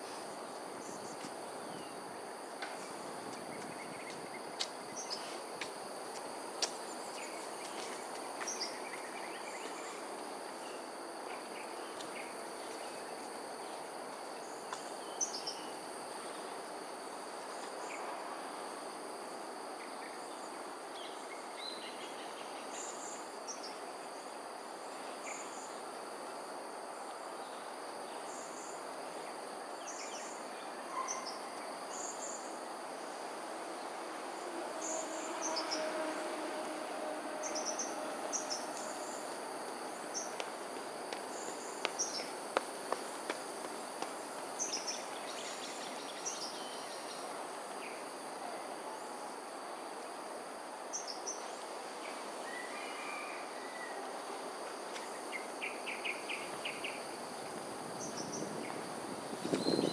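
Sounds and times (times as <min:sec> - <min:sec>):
high-pitched insect drone: 0:34.2 - 0:40.3.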